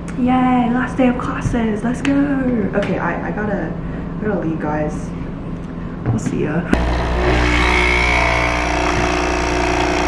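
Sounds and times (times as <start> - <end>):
coffee machine pump buzzing: 6.8 - 10.0.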